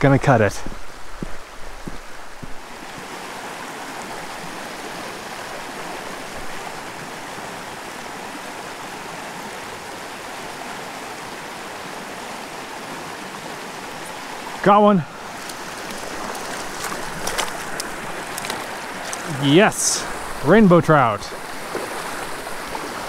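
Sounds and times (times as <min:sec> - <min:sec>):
creek water rushing over rocks: 0:00.0 - 0:23.0.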